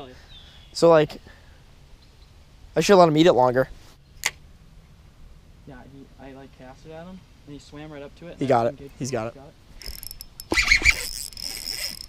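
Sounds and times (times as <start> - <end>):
fishing reel whirring: 9.8 - 12.0.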